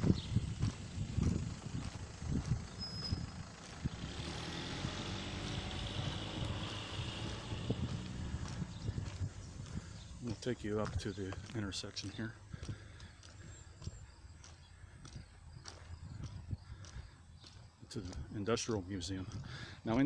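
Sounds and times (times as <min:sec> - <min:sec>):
footsteps: 0:00.0 - 0:04.0, 0:05.5 - 0:20.0
vehicle passing: 0:00.0 - 0:11.4.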